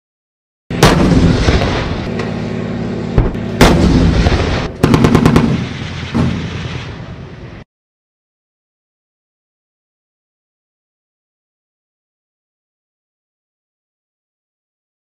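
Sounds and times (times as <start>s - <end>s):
tank cannon gunshots: 0.7s - 7.6s
tank engine running: 0.7s - 7.6s
machine-gun burst: 3.6s - 6.8s.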